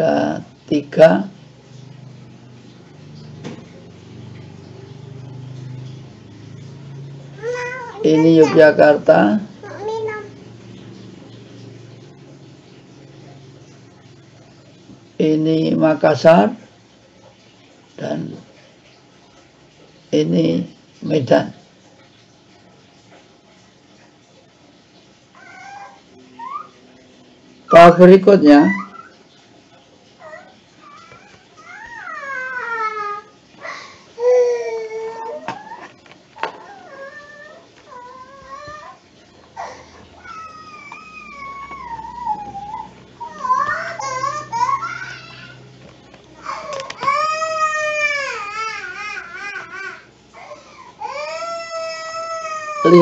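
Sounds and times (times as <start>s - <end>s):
faint steady room hum: 0.0s - 53.0s
high-pitched whining cries: 30.2s - 45.7s.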